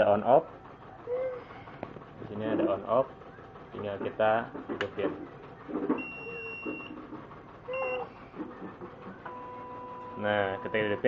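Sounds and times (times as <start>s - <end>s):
motor hum: 0.0s - 11.0s
machine beeps: 5.6s - 7.0s, 7.7s - 11.0s.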